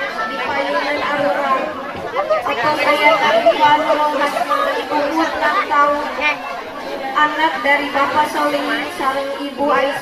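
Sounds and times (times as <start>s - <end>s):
chatter: 0.0s - 10.0s.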